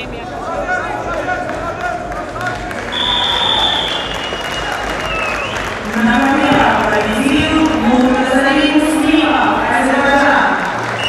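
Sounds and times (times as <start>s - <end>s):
long high whistle: 2.9s - 5.6s.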